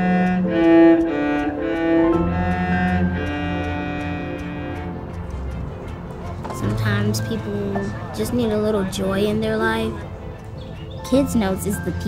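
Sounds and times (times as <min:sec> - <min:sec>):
bowed cello: 0:00.0 - 0:12.0
faint ticking beat: 0:00.0 - 0:12.0.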